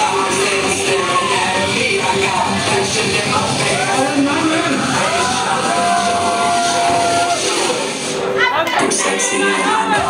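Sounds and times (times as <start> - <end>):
dance music: 0.0 - 10.0.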